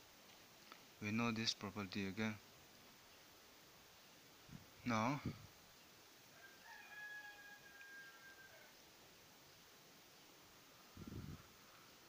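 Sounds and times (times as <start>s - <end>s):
distant animal call: 6.4s - 8.8s.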